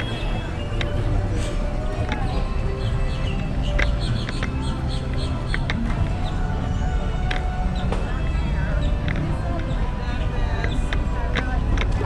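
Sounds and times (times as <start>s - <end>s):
people chattering: 0.0s - 12.0s
sharp taps: 3.2s - 6.0s.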